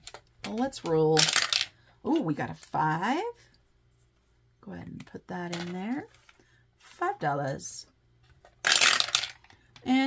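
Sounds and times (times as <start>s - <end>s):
dice rattling in wooden box: 0.0s - 1.8s, 8.6s - 9.6s.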